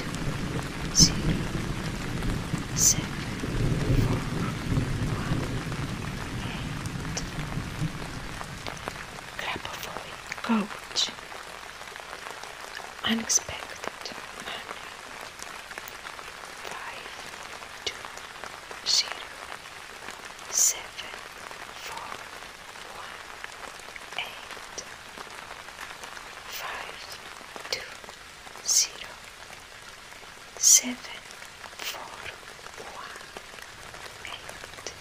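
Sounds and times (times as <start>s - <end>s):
steady rain: 0.0s - 35.0s.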